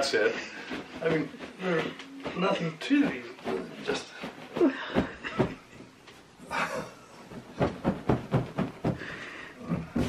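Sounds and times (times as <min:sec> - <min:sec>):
fabric rustling: 0:00.0 - 0:06.4.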